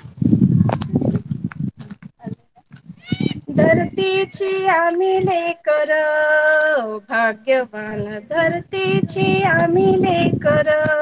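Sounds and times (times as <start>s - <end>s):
wind buffeting microphone: 0.0s - 11.0s
faint clicks and rustles: 4.6s - 11.0s.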